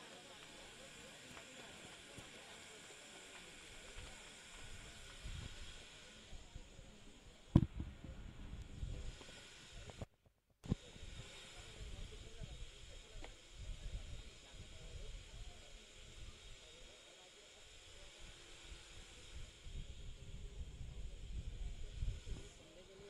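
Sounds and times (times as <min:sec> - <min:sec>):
low uneven rumble: 0:00.0 - 0:10.1
steady hiss: 0:00.0 - 0:23.0.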